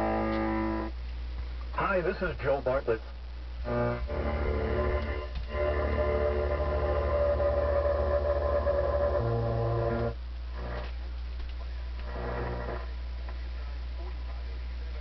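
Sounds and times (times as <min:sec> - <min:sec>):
mains hum: 0:00.0 - 0:15.0
faint radio signal traces: 0:01.4 - 0:05.4, 0:10.2 - 0:15.0
radio music: 0:01.7 - 0:05.4.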